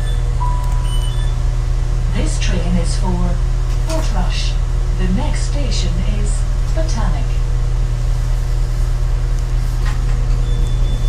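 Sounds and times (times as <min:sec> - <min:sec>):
train engine low drone: 0:00.0 - 0:11.0.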